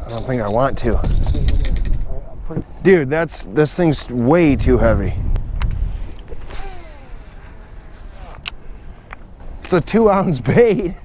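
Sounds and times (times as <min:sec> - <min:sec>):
wind rumbling on microphone: 0:00.0 - 0:08.5
fishing reel being cranked: 0:06.4 - 0:07.4.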